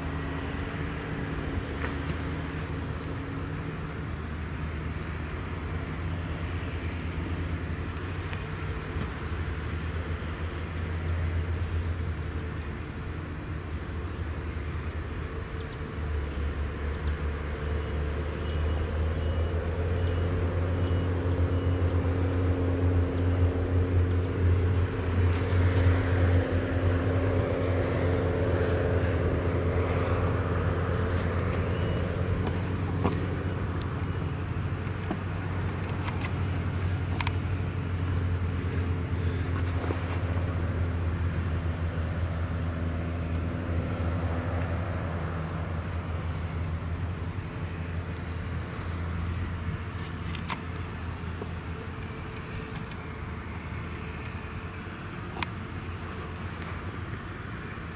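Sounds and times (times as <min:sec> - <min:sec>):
harvester engine droning: 0:00.0 - 0:57.9.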